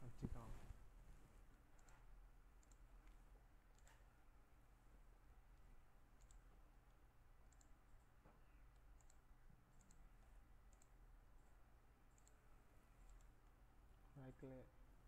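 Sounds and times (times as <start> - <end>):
computer mouse clicks: 1.7 - 4.1, 5.6 - 13.6.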